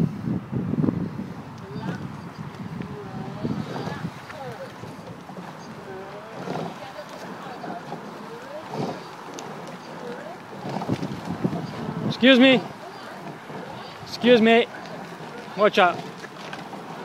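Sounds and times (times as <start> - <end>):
wind noise on microphone: 0.0 - 17.0.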